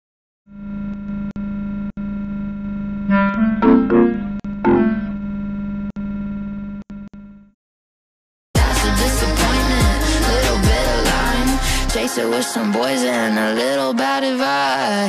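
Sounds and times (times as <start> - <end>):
higher synth notes: 3.1 - 5.2
low synthesizer drone: 3.1 - 5.8.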